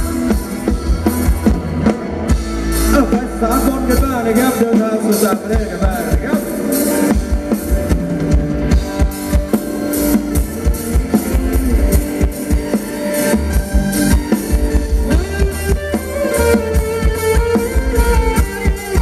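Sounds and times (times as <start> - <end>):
band playing dance music: 0.0 - 19.0
drum kit beat: 0.0 - 19.0
guitar: 0.0 - 19.0.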